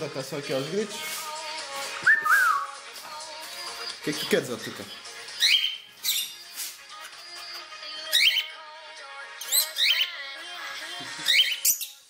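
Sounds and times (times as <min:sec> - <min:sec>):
cockatiel whistling: 0:02.0 - 0:02.7, 0:05.4 - 0:06.2, 0:08.1 - 0:08.5.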